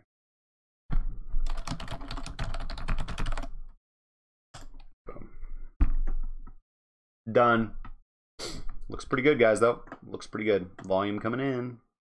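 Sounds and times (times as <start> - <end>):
rapid keyboard typing: 1.4 - 3.6.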